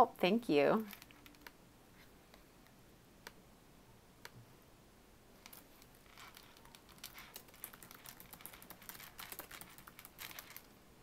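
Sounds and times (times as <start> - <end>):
faint keyboard typing: 0.8 - 1.6, 5.4 - 10.8.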